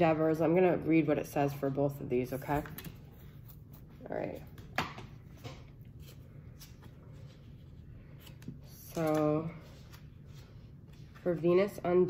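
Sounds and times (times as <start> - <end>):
paper pages rustling: 5.3 - 11.8.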